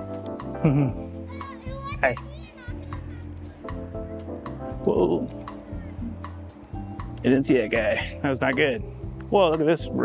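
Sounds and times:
background music: 0.0 - 10.0
short laugh: 0.6 - 1.0
children calling out: 1.0 - 4.3.

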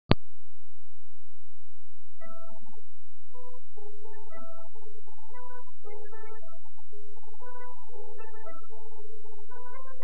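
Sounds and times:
steady low music drone: 2.1 - 10.0.

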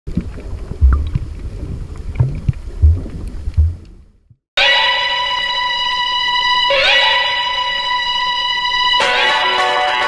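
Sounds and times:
water sloshing and splashing: 0.1 - 4.3
dull low thumps: 0.1 - 4.4.

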